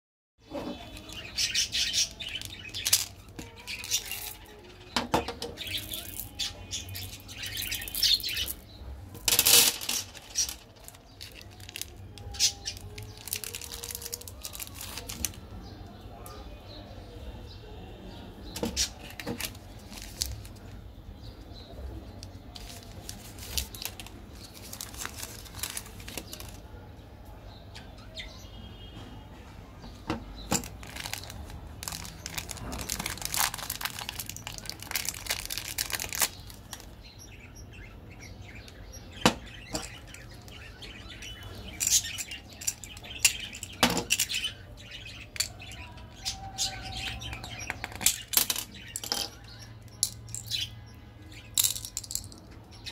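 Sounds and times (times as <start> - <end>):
plastic wrappers crinkling: 0.6 - 5.0, 5.6 - 15.5, 18.6 - 20.8, 22.1 - 26.7, 30.1 - 37.9, 38.5 - 50.6
plastic packaging clicks: 0.9 - 6.4, 9.2 - 15.4, 18.6 - 20.7, 22.1 - 26.6, 30.1 - 37.0, 46.6 - 50.6.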